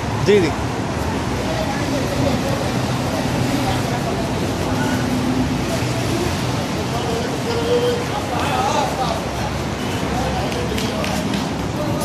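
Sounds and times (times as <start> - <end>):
street traffic engine noise: 0.0 - 12.0
people talking: 0.2 - 12.0.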